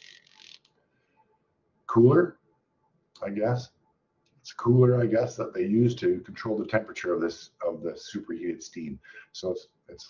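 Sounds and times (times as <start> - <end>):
man talking: 1.9 - 2.4, 3.2 - 3.7, 4.5 - 10.0
faint breath intake: 9.0 - 9.4.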